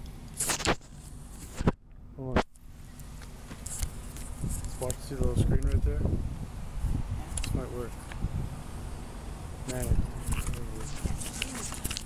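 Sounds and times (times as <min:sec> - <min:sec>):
low wind: 0:00.0 - 0:12.0
microphone handling rumble: 0:03.5 - 0:08.6, 0:09.6 - 0:12.0.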